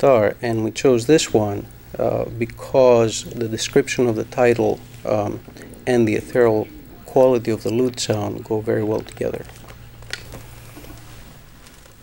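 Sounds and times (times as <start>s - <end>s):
instruments rustling: 0.0s - 12.0s
low hum: 0.0s - 12.0s.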